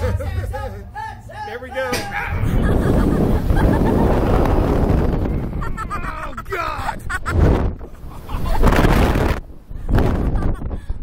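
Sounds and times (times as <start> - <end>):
people laughing and screaming: 0.0 - 8.8
wind rushing over microphone: 2.2 - 11.0.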